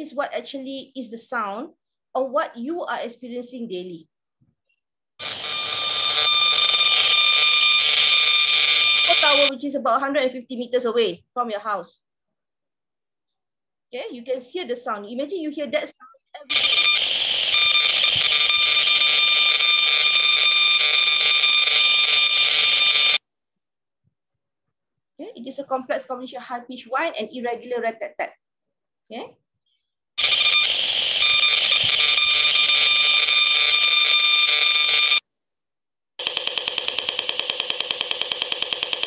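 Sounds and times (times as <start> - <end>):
high-pitched whine of held tones: 5.2 - 9.5.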